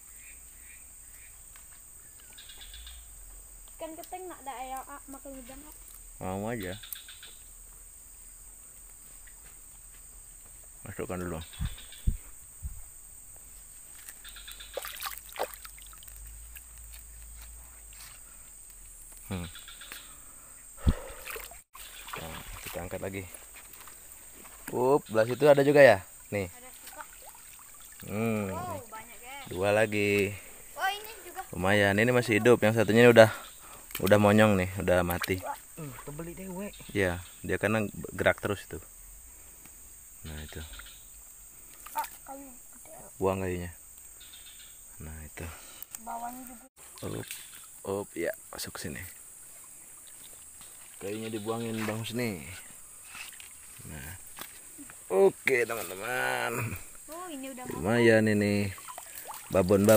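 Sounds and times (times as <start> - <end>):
high-pitched insect drone: 0.2 - 59.9
fishing net rustling: 13.8 - 18.3, 20.9 - 24.8, 58.7 - 59.9
hand splashing in water: 14.8 - 16.3, 20.8 - 22.9.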